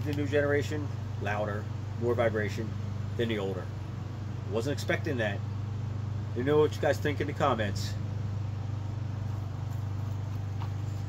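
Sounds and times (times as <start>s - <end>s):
air conditioning unit humming: 0.0s - 11.0s.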